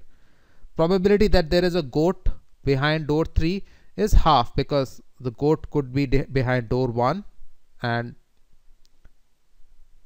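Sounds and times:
person speaking: 0.7 - 8.3.

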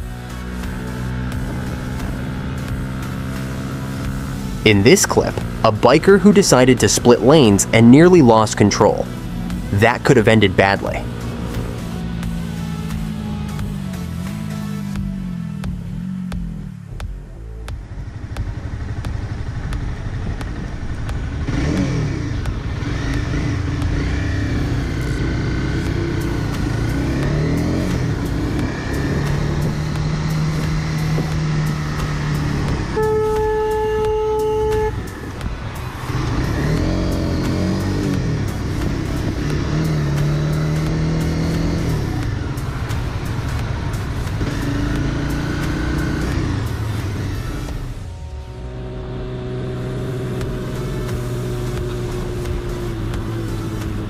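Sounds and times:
motorcycle engine accelerating: 0.0 - 54.0
car horn steady note: 32.7 - 35.2.

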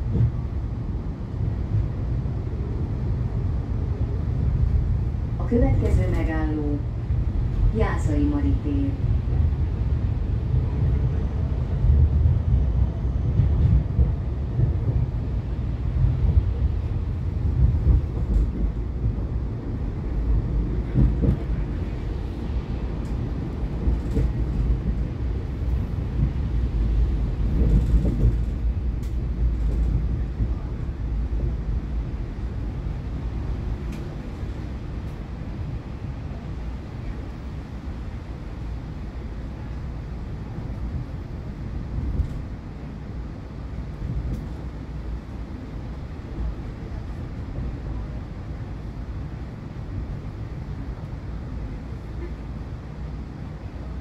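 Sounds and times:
tram wheels rumbling: 0.0 - 54.0.

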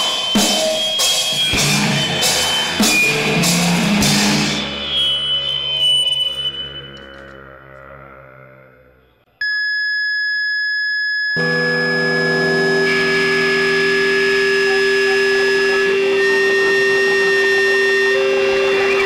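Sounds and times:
low sustained drone: 11.4 - 19.0
steady high-pitched tone: 11.4 - 19.0.

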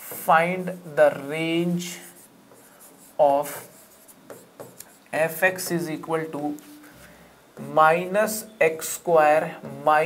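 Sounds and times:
marker pen rubbing on board: 1.8 - 6.0.

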